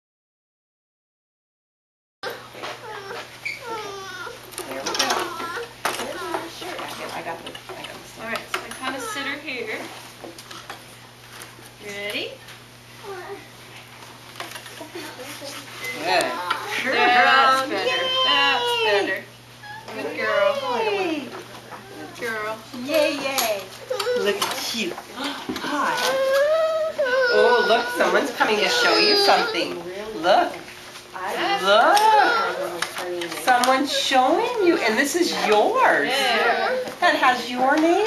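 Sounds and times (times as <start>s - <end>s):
toddler whimpering and fussing: 2.2s - 4.4s, 5.1s - 6.4s, 13.0s - 13.5s, 17.7s - 21.0s, 23.8s - 24.4s, 25.6s - 29.8s, 31.4s - 32.8s, 36.0s - 37.0s.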